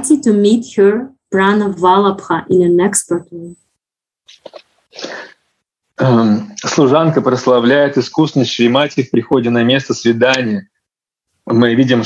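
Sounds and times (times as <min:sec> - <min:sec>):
sharp intake of breath: 0:05.0 - 0:05.4.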